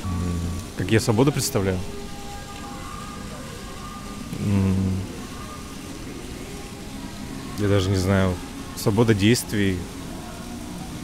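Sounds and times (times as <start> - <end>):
man's low hesitant hum: 0.0 - 1.0, 4.3 - 5.2
fountain water jets splashing: 0.0 - 11.0.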